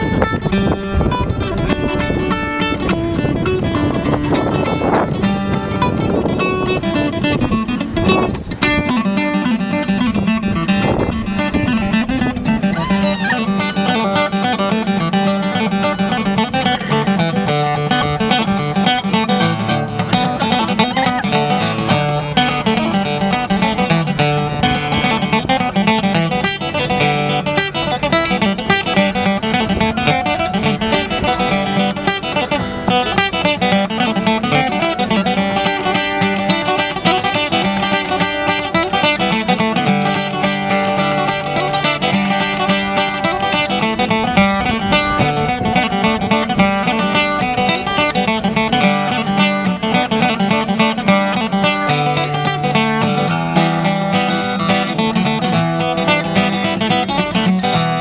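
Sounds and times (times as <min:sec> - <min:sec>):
acoustic guitar playing a tune: 0:00.0 - 0:58.0.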